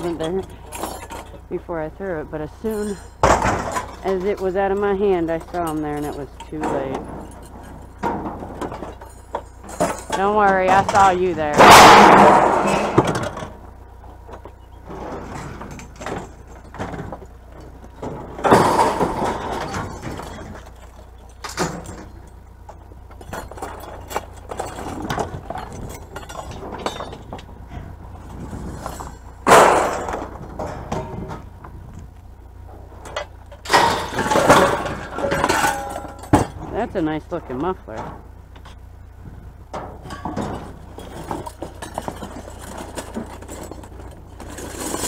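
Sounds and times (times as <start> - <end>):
metal rattling and clinking: 0.0 - 39.1, 39.7 - 45.0
scrap metal crashing onto pile: 2.4 - 13.6, 18.0 - 22.3, 23.2 - 27.4, 28.2 - 31.4, 33.1 - 38.2, 39.8 - 45.0.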